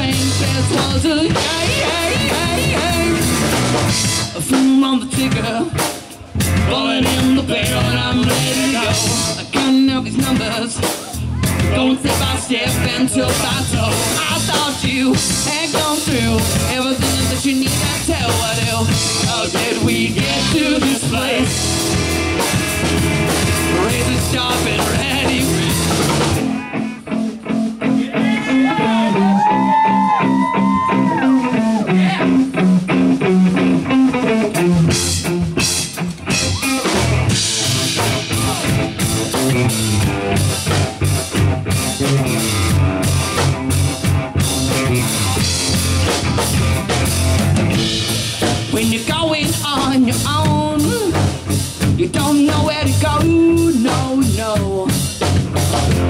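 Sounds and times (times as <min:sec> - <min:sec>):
gliding lead guitar line: 0:00.0 - 0:56.0
rock band playing: 0:00.0 - 0:56.0.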